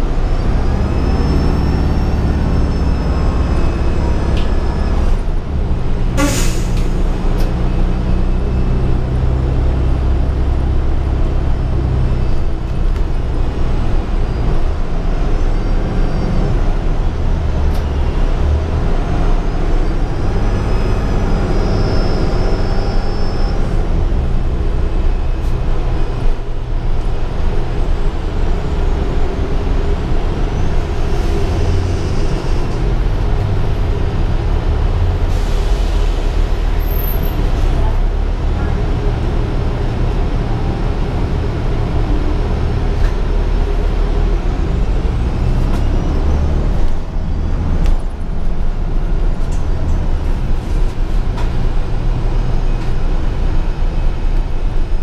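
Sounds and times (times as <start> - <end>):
bus engine drone: 0.0 - 55.0
road noise and rattles: 0.0 - 55.0.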